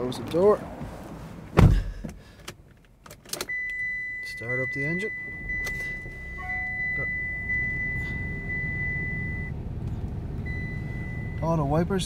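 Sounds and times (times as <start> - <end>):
diesel engine starting and idling: 3.4 - 12.0
high-pitched electronic warning tone: 3.5 - 9.5.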